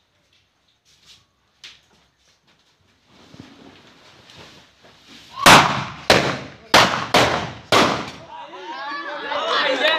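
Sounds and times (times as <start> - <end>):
pipe guns firing loud bangs: 5.4 - 8.2.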